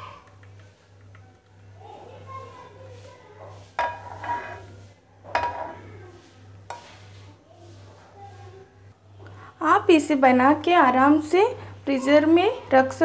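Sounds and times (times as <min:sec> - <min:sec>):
spoon scraping pan: 0:02.7 - 0:08.5
kitchenware clinking: 0:03.5 - 0:06.0.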